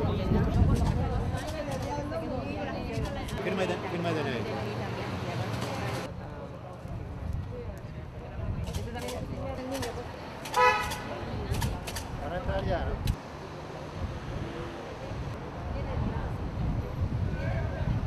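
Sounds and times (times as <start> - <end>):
crowd chatter: 0.0 - 18.0
street traffic: 0.0 - 18.0
car horn toot: 10.6 - 11.0.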